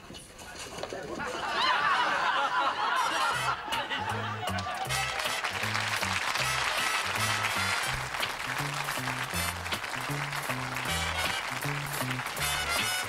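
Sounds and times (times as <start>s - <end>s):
sitcom theme tune with full band: 3.0s - 13.0s
bouncy bass line: 3.6s - 13.0s.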